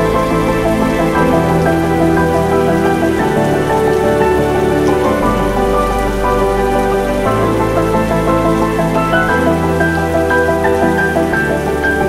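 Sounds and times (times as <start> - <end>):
soft music of sustained chords: 0.0 - 12.0
steady rain falling: 0.0 - 12.0.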